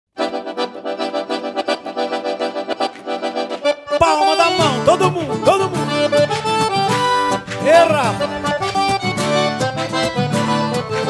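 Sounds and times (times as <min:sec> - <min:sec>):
accordion playing fast chords: 0:00.2 - 0:11.0.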